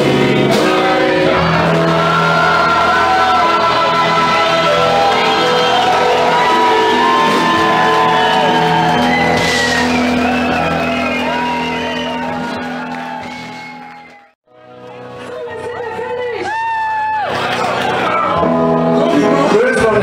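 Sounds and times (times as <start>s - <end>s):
people singing: 0.0s - 8.3s
live rock band playing: 0.0s - 14.0s
crowd shouting and whooping: 0.7s - 14.4s, 16.2s - 18.8s.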